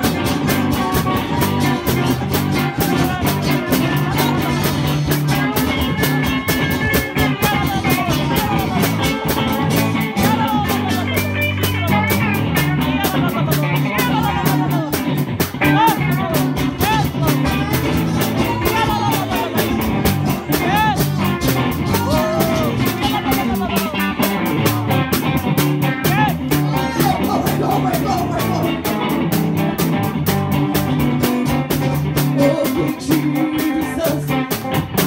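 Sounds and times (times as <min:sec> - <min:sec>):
steady quick beat: 0:00.0 - 0:32.3
acoustic guitar: 0:00.0 - 0:35.0
low bass notes: 0:00.0 - 0:35.0
high sliding melody line: 0:26.3 - 0:29.6.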